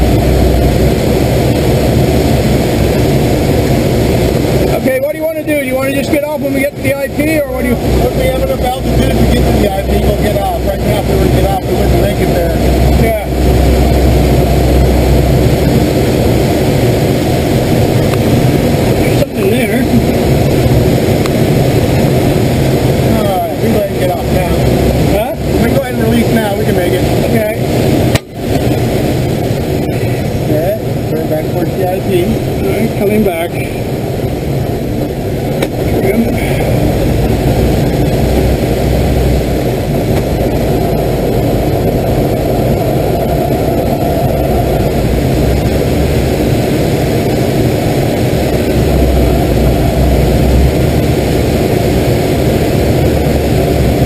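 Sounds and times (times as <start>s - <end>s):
rush of air over canopy: 0.0s - 54.0s.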